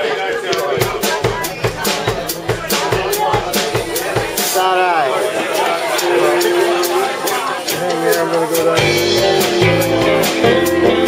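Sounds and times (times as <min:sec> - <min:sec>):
drum kit beat: 0:00.5 - 0:11.0
electric guitars: 0:00.5 - 0:11.0
keyboard playing: 0:00.5 - 0:11.0.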